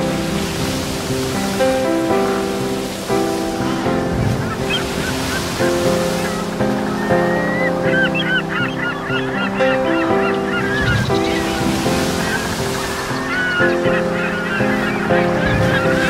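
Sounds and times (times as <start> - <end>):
overlapping bird calls: 0.0 - 16.0
steady surf-like wash: 0.0 - 16.0
sustained background music: 0.0 - 16.0.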